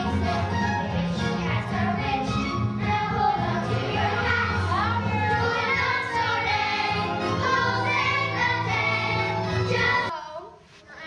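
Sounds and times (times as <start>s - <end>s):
children singing: 0.0s - 10.1s
musical accompaniment: 0.0s - 10.1s.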